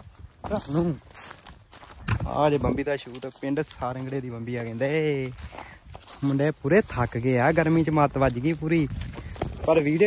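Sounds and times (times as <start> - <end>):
footsteps on dry ground: 0.0 - 10.0
man speaking: 2.2 - 5.4, 9.6 - 10.0.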